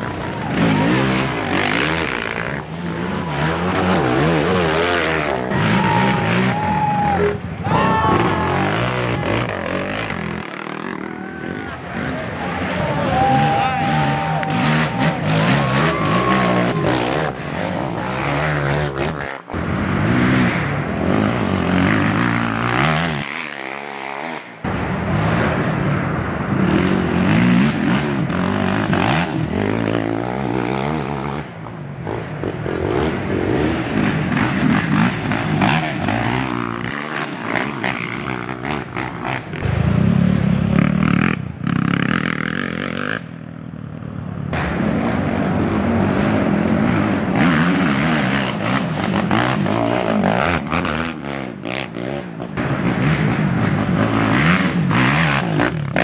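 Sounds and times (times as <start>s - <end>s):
atv engines revving: 0.0s - 56.0s.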